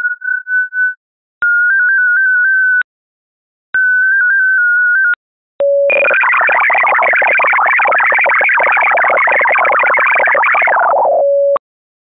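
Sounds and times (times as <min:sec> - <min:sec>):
stepping tone sequence: 0:05.9 - 0:11.2
steady radio tone: 0:05.9 - 0:11.4
shifting multi-tone data signal: 0:05.9 - 0:11.6.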